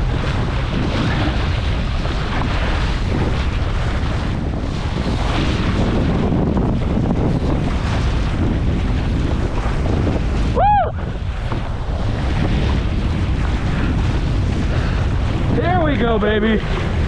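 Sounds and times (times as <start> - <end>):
water splashing along boat: 0.0 - 17.0
wind buffeting microphone: 0.0 - 17.0.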